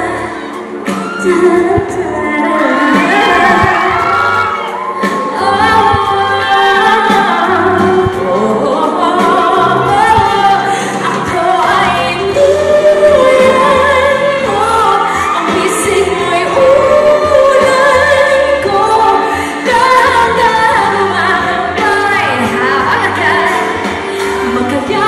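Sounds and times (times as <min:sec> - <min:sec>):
instrumental accompaniment: 0:00.0 - 0:25.0
woman singing pop ballad: 0:00.0 - 0:25.0.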